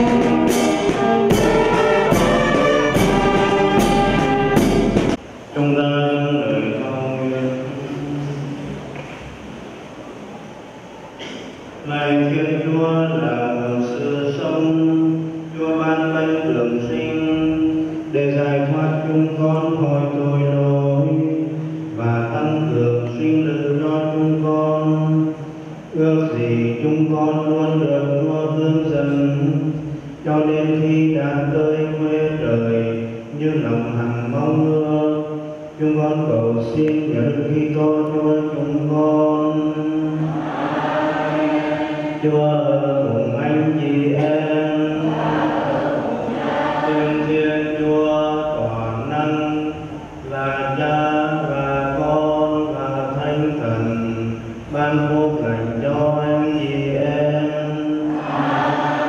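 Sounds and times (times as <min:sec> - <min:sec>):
man chanting a prayer: 0:05.5 - 0:08.6, 0:11.8 - 0:40.4, 0:42.2 - 0:45.7, 0:46.9 - 0:58.3.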